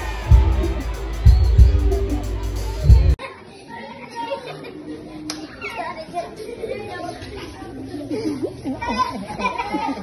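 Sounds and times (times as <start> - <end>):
children playing and calling: 0.0 - 10.0.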